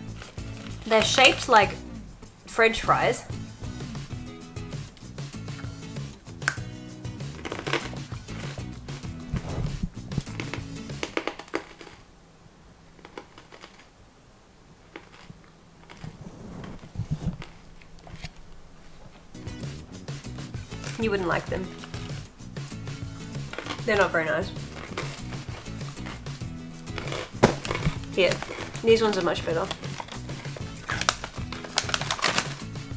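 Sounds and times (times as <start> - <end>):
snack stick crunching: 0.0 - 1.5, 4.9 - 12.0, 13.0 - 14.0, 14.8 - 18.6, 21.6 - 23.9, 24.6 - 32.9
background music: 0.0 - 11.4, 19.2 - 32.9.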